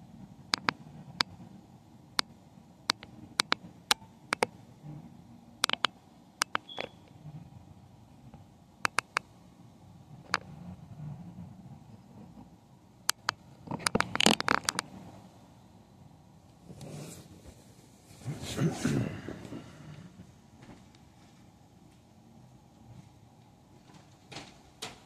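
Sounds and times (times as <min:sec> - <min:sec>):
faint low hum: 0:00.0 - 0:25.0
phone handling clicks and taps: 0:00.5 - 0:00.8, 0:05.6 - 0:06.9, 0:08.9 - 0:09.2
clicks and scrapes: 0:13.1 - 0:15.0.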